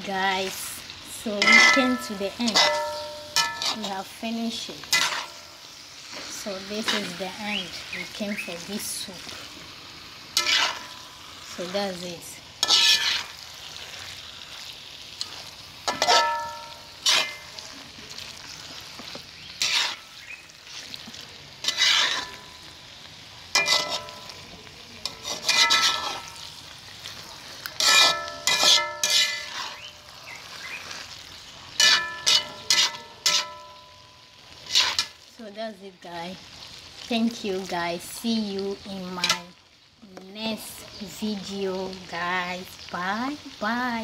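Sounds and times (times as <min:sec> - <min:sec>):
low sizzle of frying: 0:00.0 - 0:44.0
spatula scraping metal pot: 0:01.3 - 0:04.1, 0:04.8 - 0:05.4, 0:10.4 - 0:11.0, 0:12.6 - 0:13.4, 0:15.9 - 0:17.6, 0:19.0 - 0:22.7, 0:23.5 - 0:24.4, 0:25.0 - 0:26.5, 0:27.7 - 0:33.8, 0:34.6 - 0:35.2.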